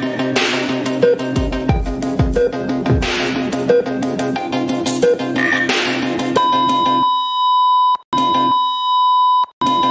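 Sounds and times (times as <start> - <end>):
low background music: 0.0 - 7.0
high electronic beep tone: 6.4 - 9.9.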